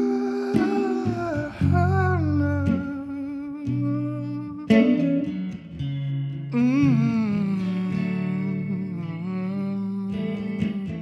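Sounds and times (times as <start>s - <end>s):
man humming: 0.0s - 5.2s, 6.5s - 11.0s
plucked guitar note: 0.0s - 11.0s
sustained guitar notes: 0.0s - 11.0s.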